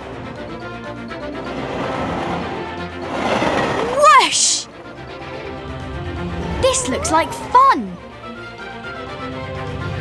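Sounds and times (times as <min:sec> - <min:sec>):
roller coaster rushing and rattling: 0:01.4 - 0:04.4
cartoon background music: 0:03.8 - 0:10.0.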